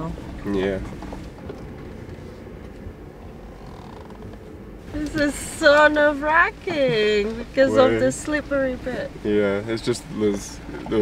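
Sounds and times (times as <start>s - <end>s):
vehicle rumble on dirt track: 0.0s - 11.0s.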